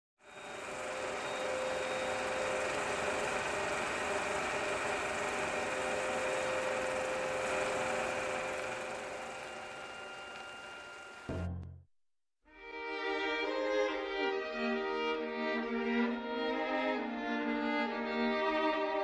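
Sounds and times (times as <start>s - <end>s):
film projector whirring: 0.2s - 11.3s.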